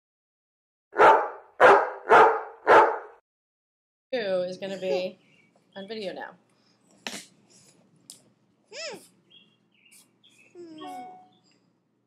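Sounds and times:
dog barking: 0.9s - 3.2s.

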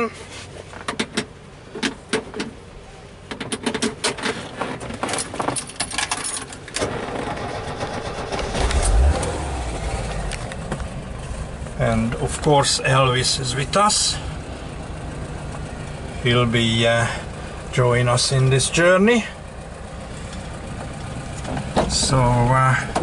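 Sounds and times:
seatbelt buckle and keys rattling: 3.5s - 6.8s
van engine starting and idling: 6.6s - 23.0s.

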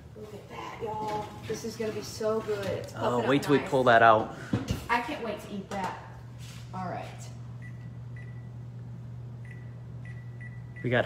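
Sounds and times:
electric oven humming: 0.0s - 11.0s.

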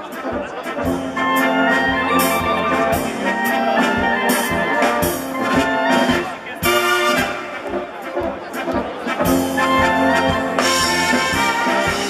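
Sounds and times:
brass band playing a polka: 0.0s - 12.0s.

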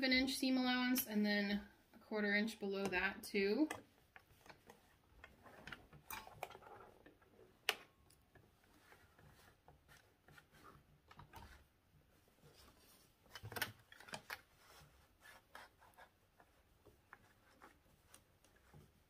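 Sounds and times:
fabric rustling: 8.5s - 19.0s.

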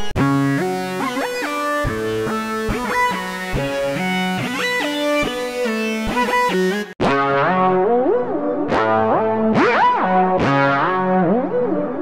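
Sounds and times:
distorted synth lead melody: 0.0s - 12.0s.

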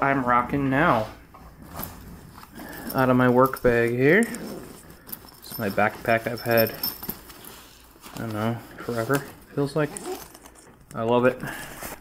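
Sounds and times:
fabric backpack rustling: 1.5s - 12.0s.

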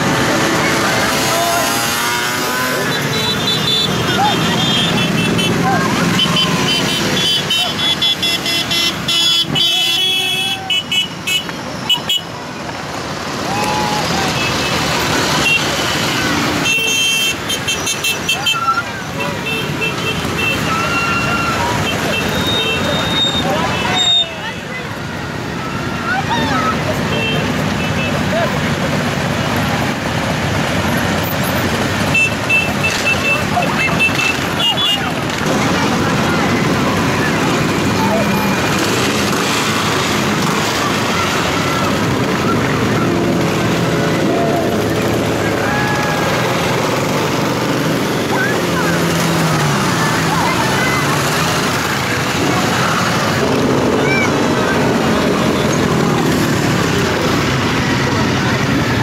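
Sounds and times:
motorcycles riding past: 0.0s - 10.5s, 12.5s - 59.0s
motorcycle horns tooting: 0.1s - 12.4s, 14.0s - 29.6s, 31.2s - 58.9s.

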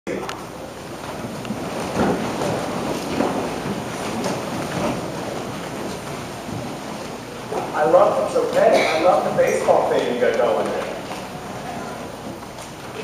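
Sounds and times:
people settling in wooden pews: 0.1s - 13.0s.

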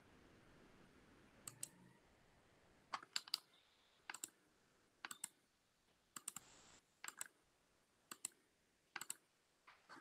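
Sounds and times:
computer mouse clicking: 1.4s - 1.8s, 2.9s - 4.4s, 5.0s - 5.4s, 6.1s - 7.4s, 8.1s - 9.3s.

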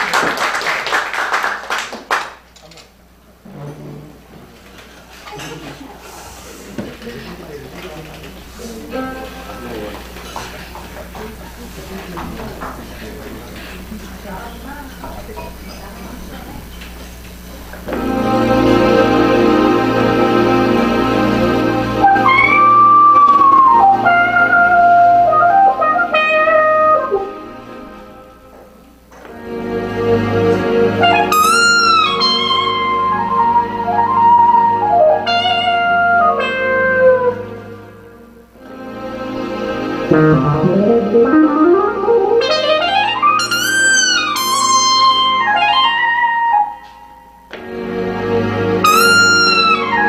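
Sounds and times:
jazz band playing: 17.8s - 28.6s, 29.3s - 50.0s.

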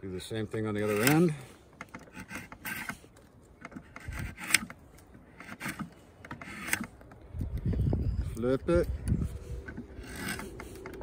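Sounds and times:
draw knife scraping wood: 1.8s - 6.9s.

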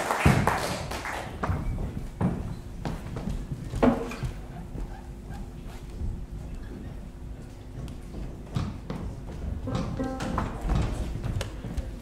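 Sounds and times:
knocks and taps of stage gear: 7.8s - 12.0s.

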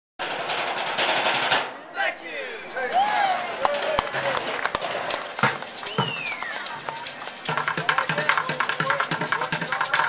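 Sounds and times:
sticks drumming metal trash cans: 0.2s - 1.7s, 3.8s - 10.0s.

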